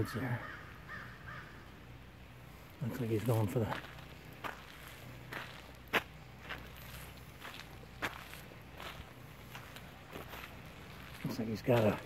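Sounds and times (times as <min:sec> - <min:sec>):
footsteps on gritty pavement: 0:02.7 - 0:12.0.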